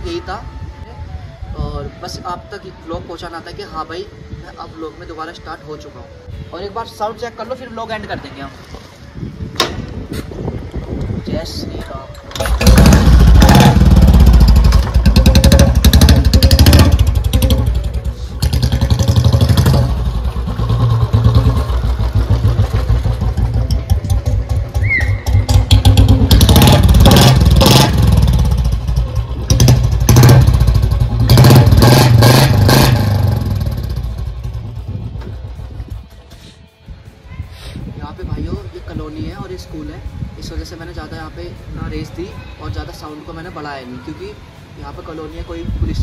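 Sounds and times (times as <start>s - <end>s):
motorcycle engine revving: 12.4s - 35.8s.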